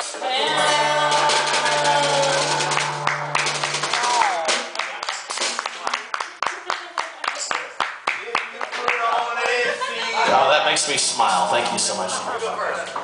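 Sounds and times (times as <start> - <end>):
acoustic guitar: 0.0 - 6.1
audience clapping: 0.5 - 9.4.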